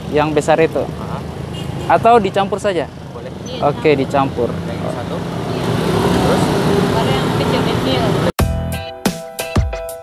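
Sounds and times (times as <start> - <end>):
roadside traffic noise: 0.0 - 8.4
electronic music with strong beat: 8.4 - 10.0.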